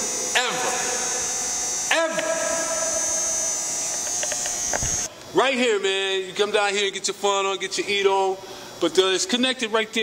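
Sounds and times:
electrical buzz with held tones: 0.0 - 10.0.

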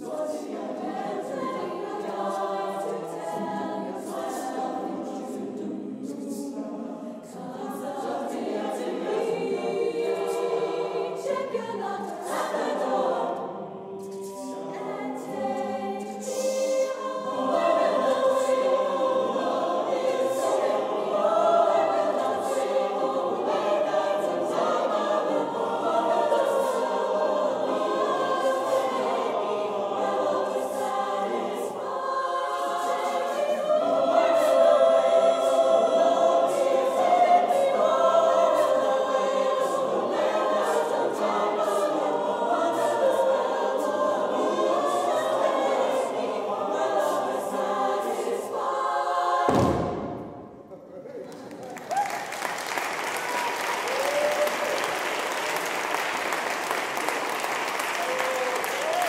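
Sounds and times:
mixed choir singing a cappella: 0.0 - 50.6, 52.3 - 59.0.

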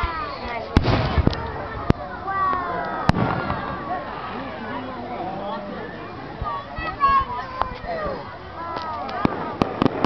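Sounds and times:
firework cracks: 0.0 - 4.0, 8.7 - 10.0
people chattering: 0.0 - 10.0
firework bang: 0.8 - 4.0, 9.2 - 10.0.

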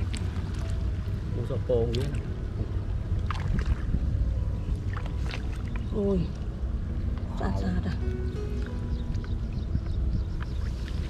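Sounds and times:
light water splashes: 0.0 - 7.8
wind rumble on microphone: 0.0 - 11.0.

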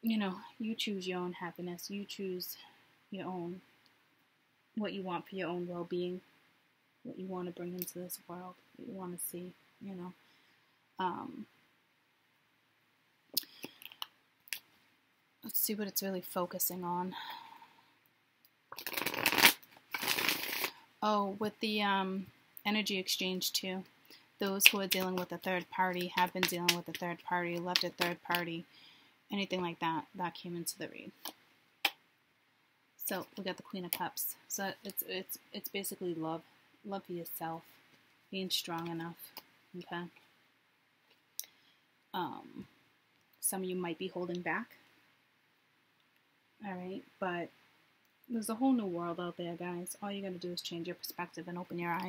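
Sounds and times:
cards being shuffled: 18.8 - 20.7.

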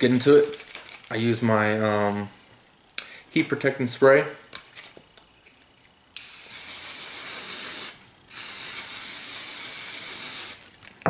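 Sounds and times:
aerosol hair spray hissing: 6.2 - 10.7.

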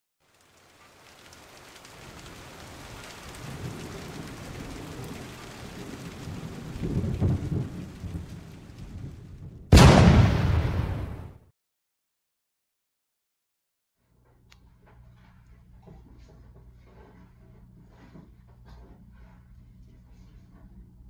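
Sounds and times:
rain hissing: 0.2 - 9.5
low rumble of thunder: 1.5 - 11.3
loud thunderclap: 2.0 - 11.4.

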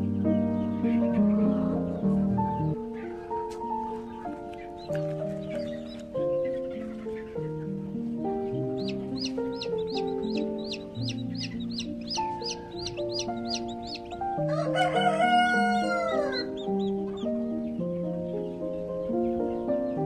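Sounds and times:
background music of held notes: 0.0 - 20.0
high chick peeps: 1.9 - 19.4
rooster crowing: 12.8 - 16.9.

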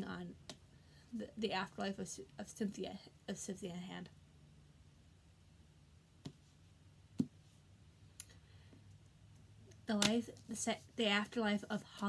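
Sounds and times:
woman speaking: 0.0 - 0.4, 1.1 - 4.2, 9.8 - 12.0.

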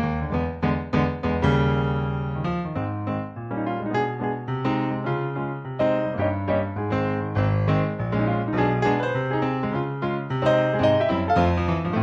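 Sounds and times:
piano music: 0.0 - 12.0.

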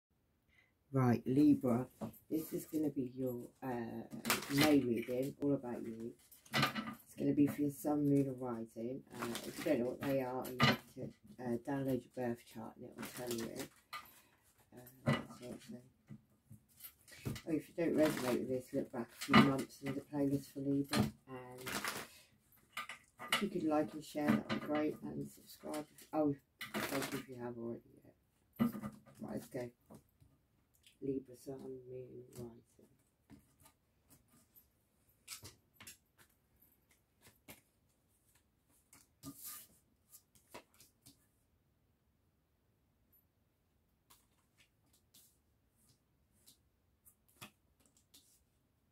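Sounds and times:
woman speaking: 0.9 - 6.2, 7.1 - 13.7, 14.7 - 15.8, 17.4 - 21.8, 23.4 - 28.1, 29.2 - 29.7, 31.0 - 32.8
cards being shuffled: 36.9 - 41.2.

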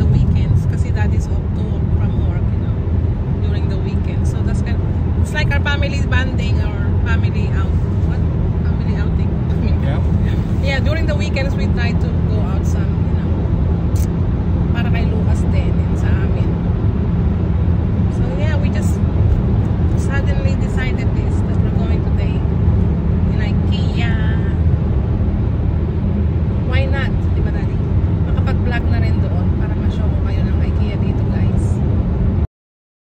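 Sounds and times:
road and engine noise in car: 0.0 - 32.5.

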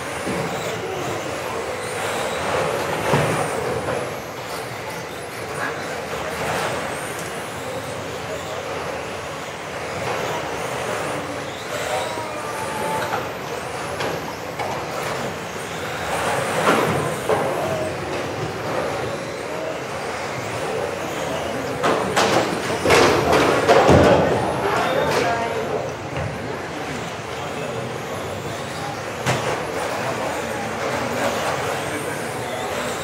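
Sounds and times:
rc car motors whining: 0.0 - 33.0.

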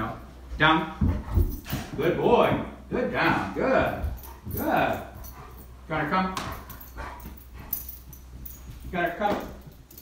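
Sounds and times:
collar and leash jingling: 0.0 - 10.0.

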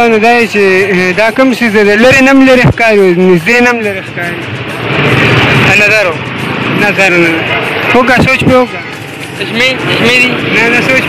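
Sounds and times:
men talking: 0.0 - 11.0
motor vehicle passing: 3.3 - 11.0.

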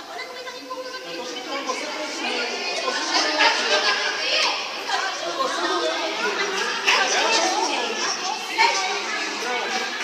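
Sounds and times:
overlapping voices: 1.2 - 10.0.

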